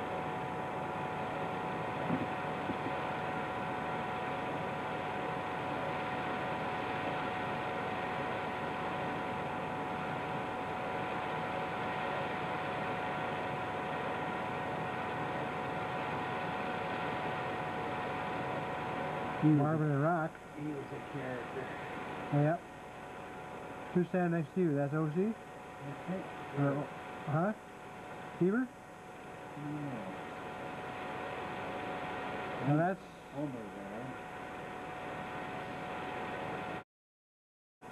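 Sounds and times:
background hiss and hum: 0:00.0 - 0:36.8
thin constant tones: 0:00.0 - 0:36.8.

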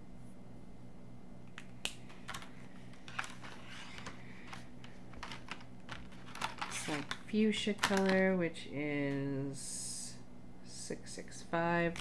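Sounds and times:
steady low hum: 0:00.0 - 0:12.0
plastic marker pens clattering: 0:02.2 - 0:08.2.

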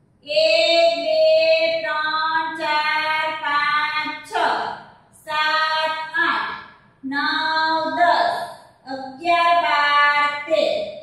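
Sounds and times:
woman singing unaccompanied: 0:00.3 - 0:04.6, 0:05.2 - 0:06.4, 0:07.0 - 0:10.8.

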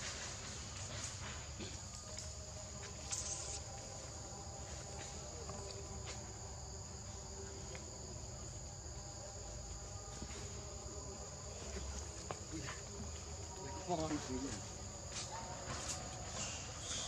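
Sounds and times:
crickets chirping: 0:00.0 - 0:17.0.

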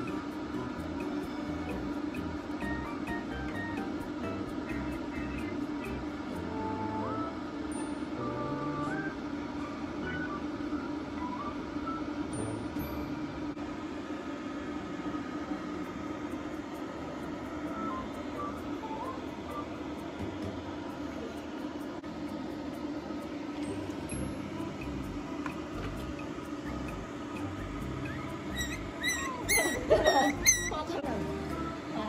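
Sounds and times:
blow dryer running: 0:22.2 - 0:32.0
background music: 0:30.0 - 0:32.0.

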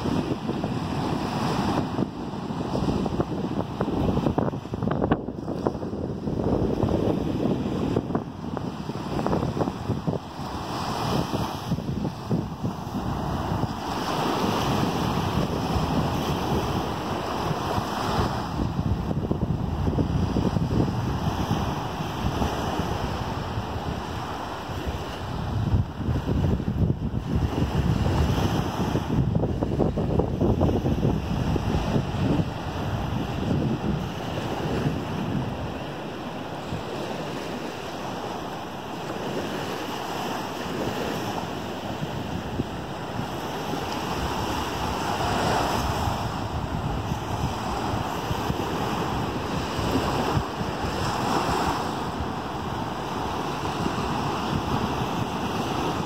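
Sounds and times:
waves breaking on sandy beach: 0:00.0 - 0:56.0
wind buffeting microphone: 0:00.0 - 0:56.0.

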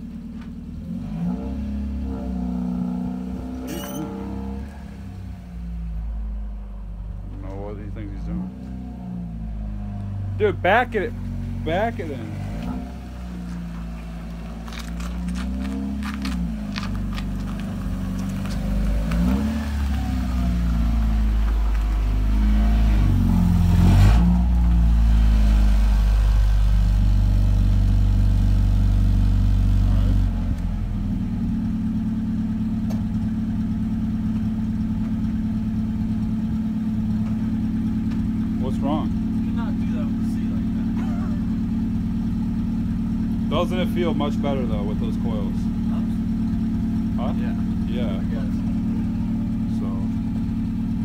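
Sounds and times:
car engine revving: 0:00.7 - 0:51.0
car engine idling: 0:03.3 - 0:51.0.

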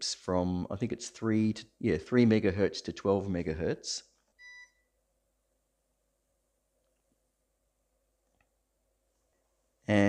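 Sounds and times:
short electronic beep: 0:04.4 - 0:04.9.

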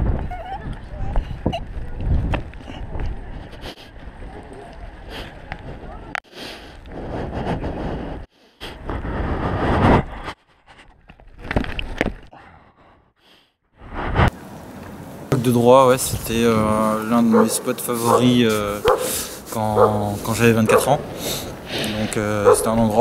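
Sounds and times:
wind rumbling on microphone: 0:00.0 - 0:12.2, 0:13.8 - 0:23.0.

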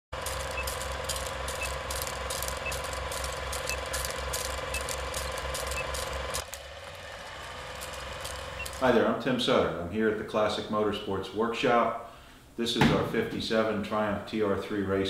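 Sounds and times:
film projector clatter: 0:00.1 - 0:08.9.

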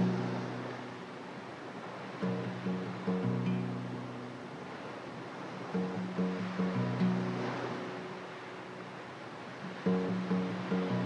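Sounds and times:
small waves over pebbles: 0:00.0 - 0:03.1, 0:03.9 - 0:11.0.

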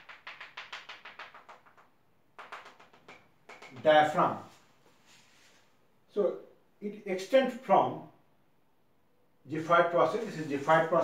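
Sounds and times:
chalk tapping on chalkboard: 0:00.0 - 0:04.2.

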